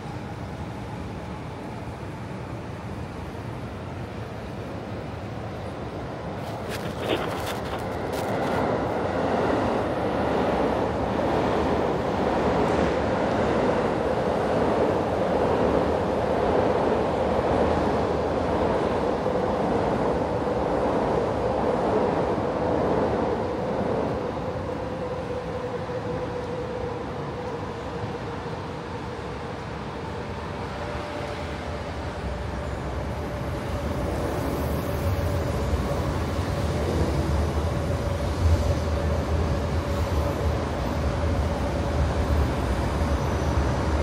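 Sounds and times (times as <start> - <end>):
train rumbling past: 0.0 - 44.0.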